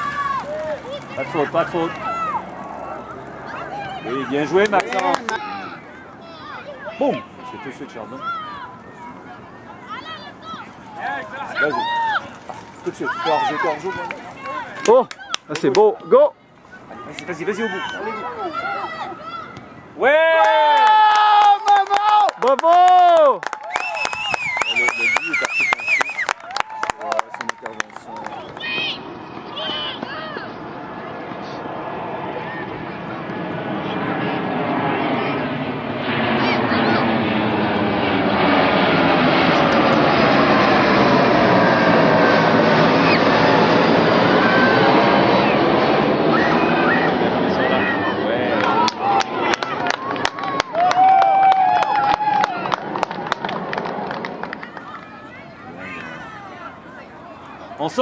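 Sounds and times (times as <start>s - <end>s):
aircraft passing overhead: 0.0s - 15.9s, 20.2s - 58.0s.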